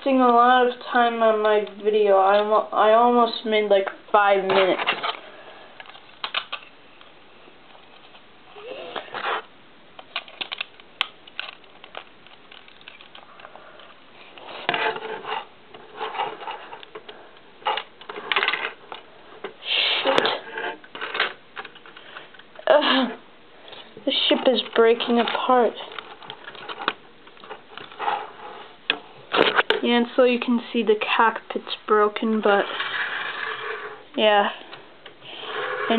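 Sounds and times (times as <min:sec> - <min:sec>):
plastic bricks clicking and clattering: 0:10.0 - 0:13.5.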